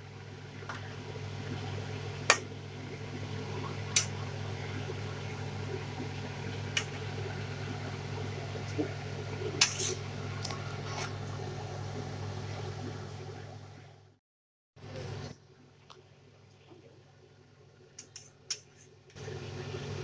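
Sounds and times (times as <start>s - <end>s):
steady low hum: 0.0s - 14.2s
spoon scraping metal pan: 9.6s - 10.0s.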